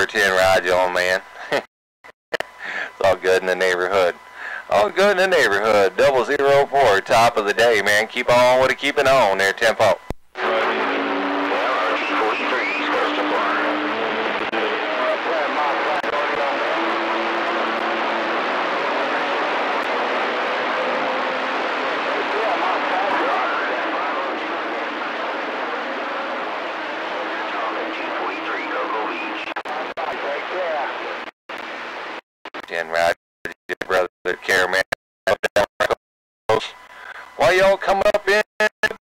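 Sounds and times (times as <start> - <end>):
radio static hiss: 0.0 - 1.7, 2.3 - 39.0
faint unreadable voices: 10.4 - 17.9, 20.8 - 31.2.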